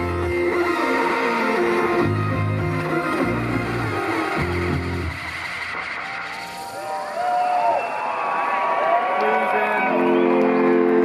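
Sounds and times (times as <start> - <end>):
live electronic music: 0.0 - 11.0
audience whooping and whistling: 5.8 - 11.0.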